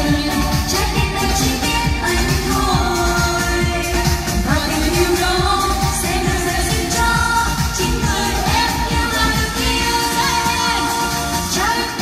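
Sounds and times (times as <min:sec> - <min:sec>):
backing track with steady beat: 0:00.0 - 0:12.0
woman singing pop song: 0:00.0 - 0:12.0.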